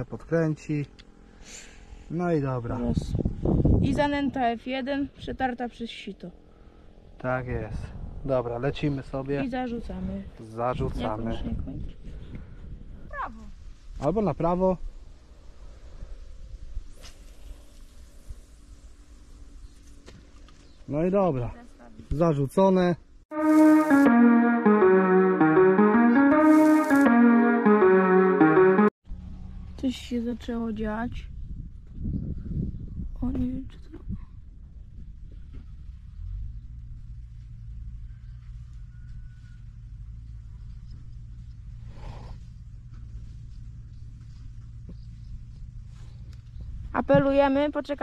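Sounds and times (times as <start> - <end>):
wind rumbling on microphone: 2.9 - 4.4, 11.4 - 14.0, 31.0 - 36.8.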